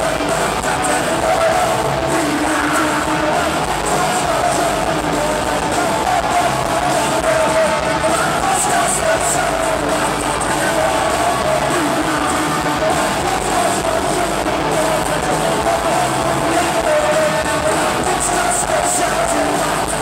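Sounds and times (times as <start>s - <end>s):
live punk rock band: 0.0s - 20.0s
person singing: 0.0s - 20.0s.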